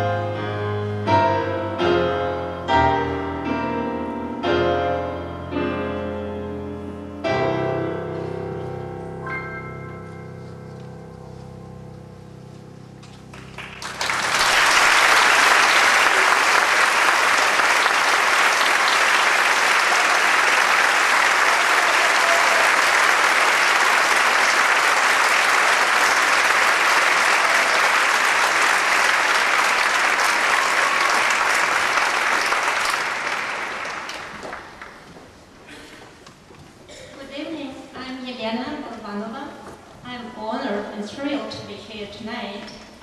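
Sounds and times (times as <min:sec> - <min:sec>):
audience applauding: 0:13.3 - 0:35.2.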